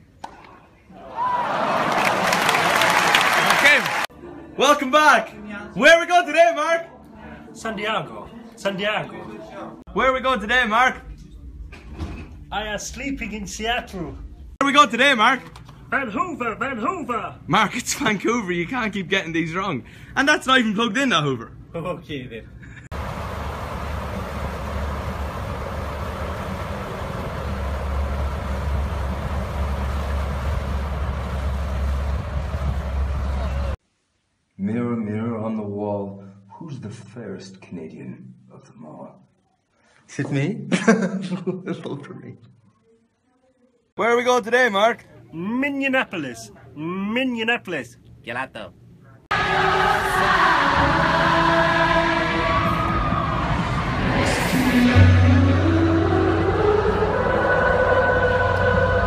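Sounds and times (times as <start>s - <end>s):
large cooling fan running: 22.6s - 33.8s
big crowd noise: 32.4s - 33.8s, 49.3s - 59.0s
person singing long held notes: 49.3s - 59.0s.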